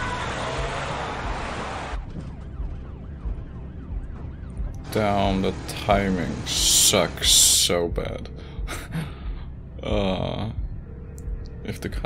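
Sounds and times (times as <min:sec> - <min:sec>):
police siren wailing: 0:00.0 - 0:08.0.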